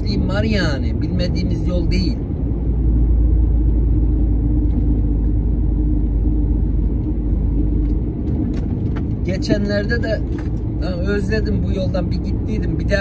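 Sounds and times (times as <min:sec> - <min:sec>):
lorry engine and road rumble: 0:00.0 - 0:13.0.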